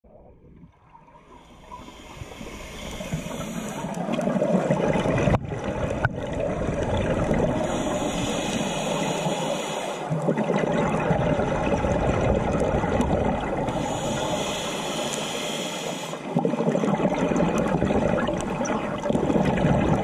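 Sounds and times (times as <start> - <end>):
underwater regulator bubbles: 0.4 - 20.0.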